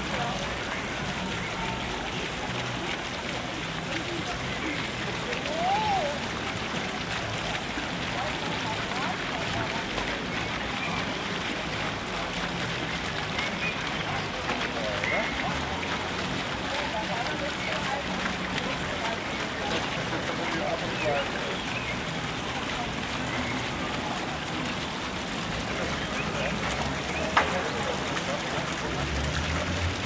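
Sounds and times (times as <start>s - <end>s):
faint distant voices: 0.0s - 30.0s
rushing outdoor background noise: 0.0s - 30.0s.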